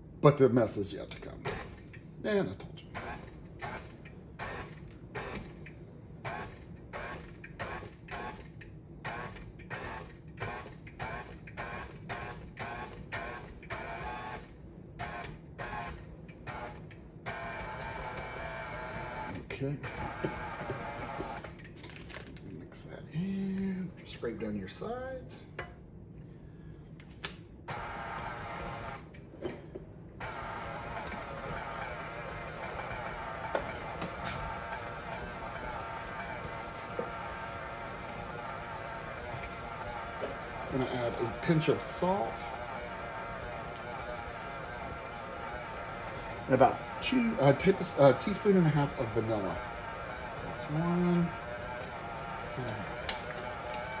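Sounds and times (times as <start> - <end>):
stand mixer running: 2.9 - 21.6, 27.7 - 29.1, 30.2 - 54.0.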